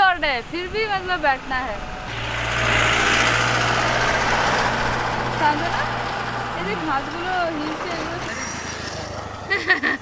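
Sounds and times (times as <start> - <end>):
tyre and road noise: 0.0 - 10.0
vehicle driving past: 1.7 - 9.5.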